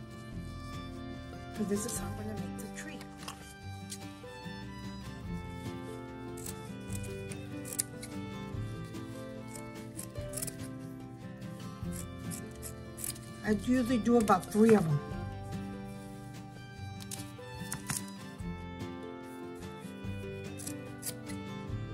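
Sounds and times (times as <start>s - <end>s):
background music with held notes: 0.0s - 21.9s
scissors cutting rope: 1.6s - 4.2s, 5.8s - 11.0s, 11.7s - 15.0s, 16.0s - 18.4s, 19.3s - 21.5s.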